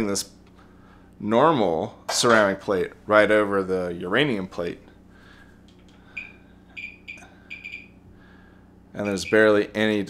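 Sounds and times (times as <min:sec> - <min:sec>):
geiger counter chirps: 0:06.2 - 0:08.0.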